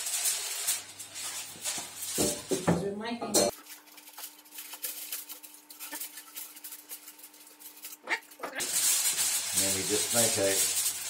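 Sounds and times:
aluminium foil crinkling: 0.0 - 11.0.

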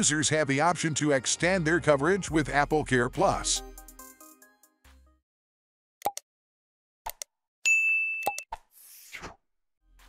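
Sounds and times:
high bell ding: 7.7 - 8.4.

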